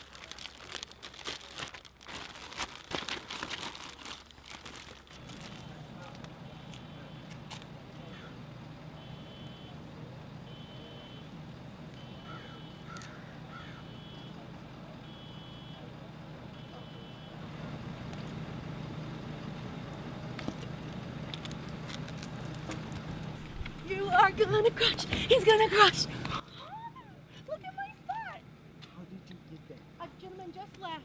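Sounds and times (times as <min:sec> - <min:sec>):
low engine rumble: 0:00.0 - 0:31.0
vehicle reversing alarm beeping: 0:05.2 - 0:20.4.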